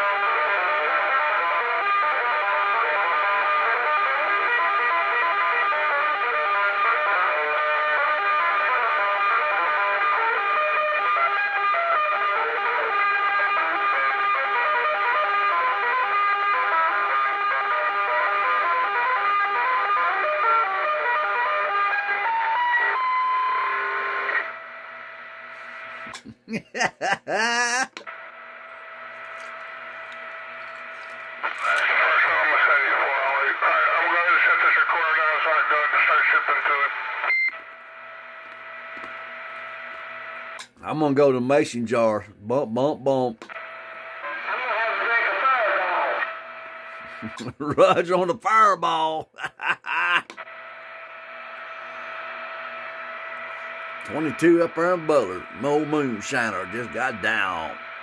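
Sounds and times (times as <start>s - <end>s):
guitar song over radio: 0.0s - 37.6s, 44.2s - 50.4s, 51.0s - 58.0s
radio carrier hum: 24.3s - 58.0s
garbled radio voice: 26.1s - 28.1s, 31.4s - 37.0s, 44.2s - 46.2s, 47.0s - 50.4s, 54.1s - 57.8s.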